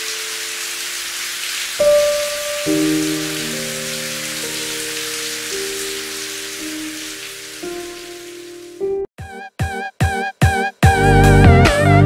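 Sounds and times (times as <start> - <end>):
rain splashing on wet surface: 0.0 - 8.8
soft instrumental music: 1.8 - 12.0.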